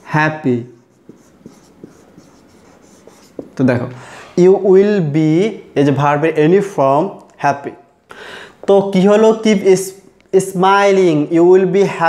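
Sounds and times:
marker pen scratching on whiteboard: 0:00.0 - 0:03.7.

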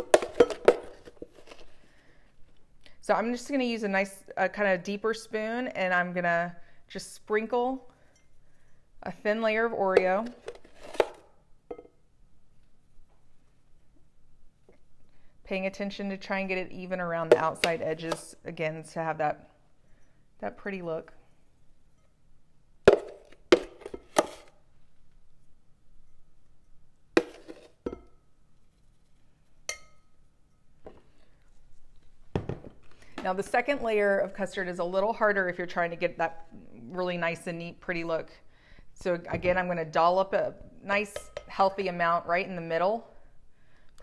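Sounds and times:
metal spoon clinking on glass: 0:29.7 - 0:30.6.

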